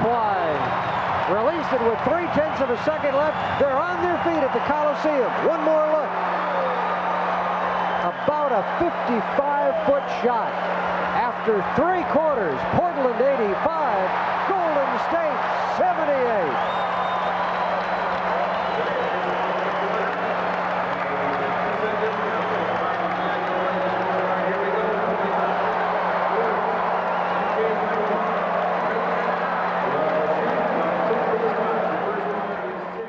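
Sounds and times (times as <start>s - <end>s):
crowd cheering and roaring: 0.0s - 33.0s.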